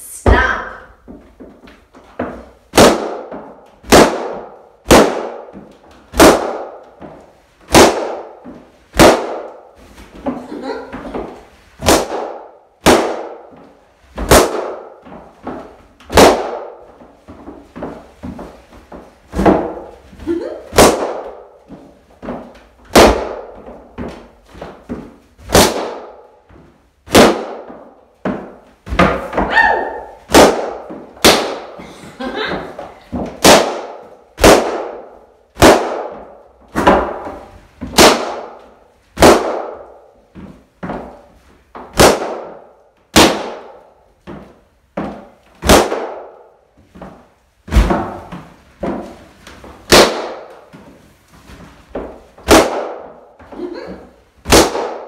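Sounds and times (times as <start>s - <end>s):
balloons bursting: 0.1s - 55.0s.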